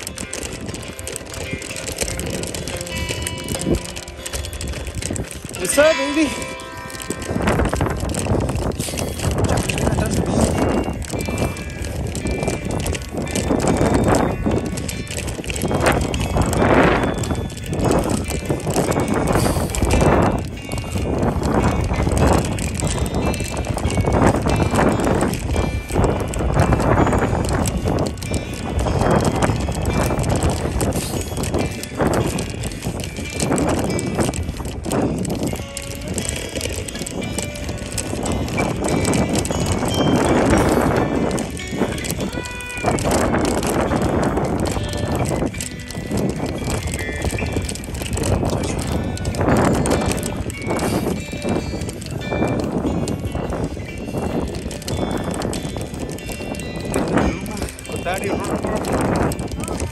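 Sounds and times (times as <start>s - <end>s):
mountain bike rattling on dirt: 0.0s - 59.9s.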